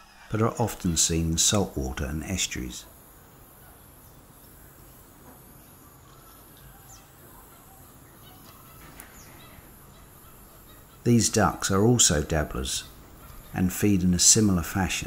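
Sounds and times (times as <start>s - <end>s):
steady low hiss: 0.0s - 15.0s
faint bird calls: 2.5s - 15.0s.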